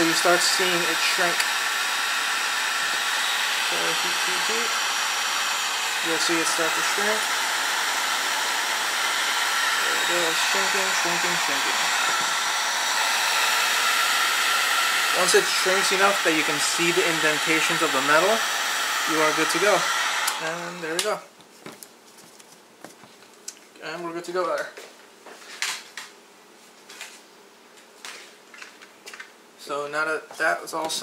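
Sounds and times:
heat gun blowing air: 0:00.0 - 0:20.9
rustling: 0:21.4 - 0:23.4.

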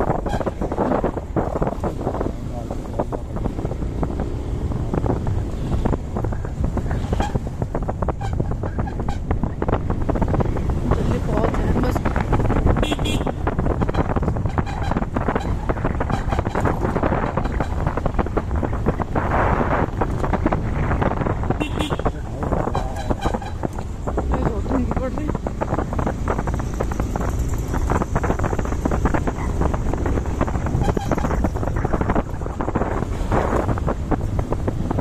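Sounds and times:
motorcycle low rumble: 0:00.0 - 0:35.0
wind buffeting microphone: 0:00.0 - 0:35.0.

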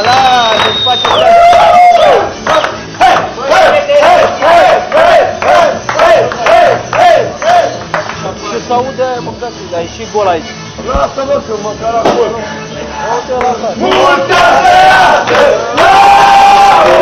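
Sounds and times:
hand claps: 0:00.0 - 0:01.4, 0:02.4 - 0:03.4, 0:04.0 - 0:08.3, 0:13.3 - 0:14.1
long drawn-out shout: 0:01.2 - 0:02.3, 0:13.8 - 0:17.0
men chanting: 0:02.4 - 0:07.8, 0:12.3 - 0:17.0.

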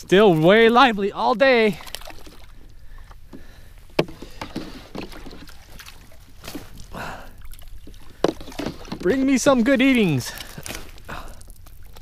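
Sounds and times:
water sloshing: 0:00.0 - 0:12.0
net knocking against plastic: 0:04.0 - 0:05.1.

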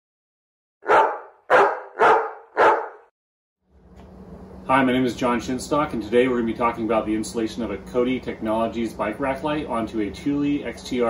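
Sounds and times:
dog barking: 0:00.8 - 0:03.1.

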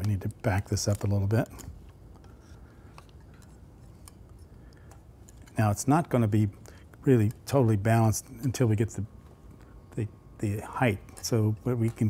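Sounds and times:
faint clicks and rubbing of handling: 0:00.0 - 0:10.0, 0:10.8 - 0:12.0
low room hum: 0:00.0 - 0:12.0.

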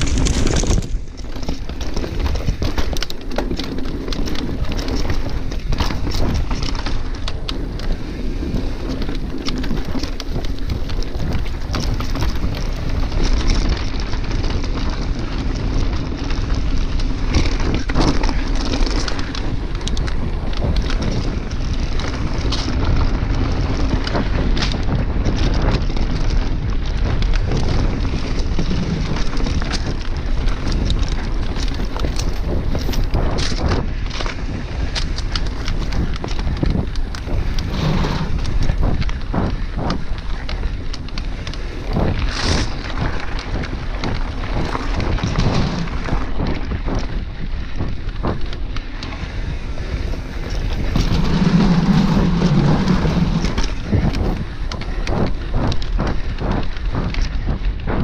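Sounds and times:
bike clicks and rattles: 0:00.0 - 0:58.0
bike tyres on dirt and stones: 0:00.0 - 0:58.0
wind buffeting microphone: 0:00.0 - 0:58.0.

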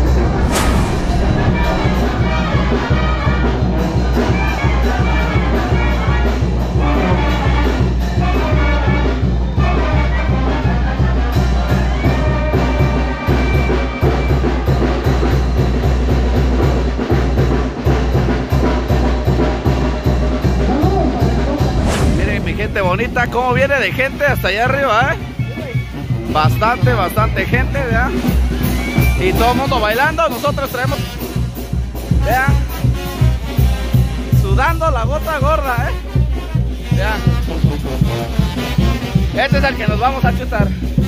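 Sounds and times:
brass band playing dance music: 0:30.6 - 0:34.7, 0:35.8 - 0:41.0.

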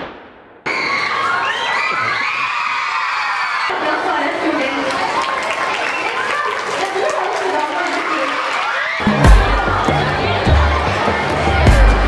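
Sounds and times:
children cheering and shouting: 0:00.7 - 0:12.0
dance music: 0:09.0 - 0:12.0.

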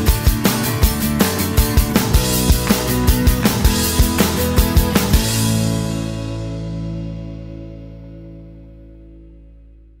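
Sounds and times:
closing theme music: 0:00.0 - 0:09.3.

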